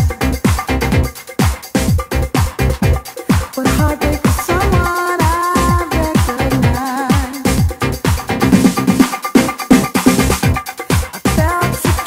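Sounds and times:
dance music kick drum beat: 0:00.0 - 0:12.0.

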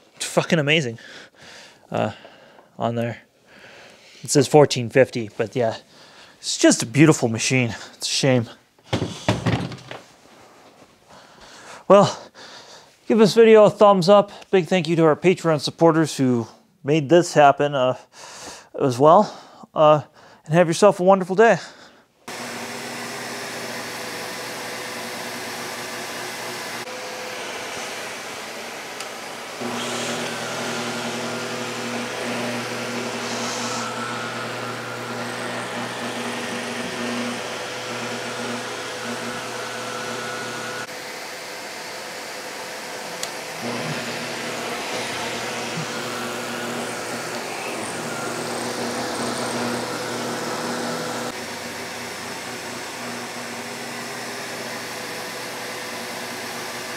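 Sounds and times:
vacuum cleaner running on carpet: 0:22.3 - 0:56.9.

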